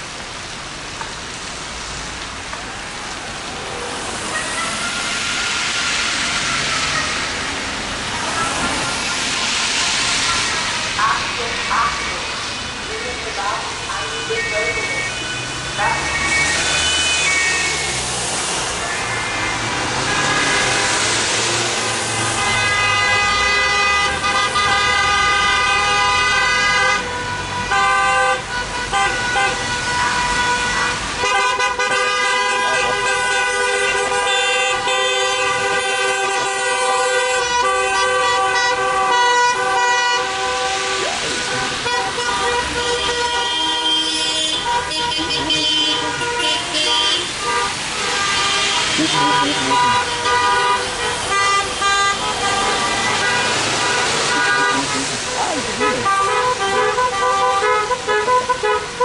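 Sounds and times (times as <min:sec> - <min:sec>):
low rumble of traffic: 0:00.0 - 0:59.0
car horns honking: 0:13.9 - 0:59.0.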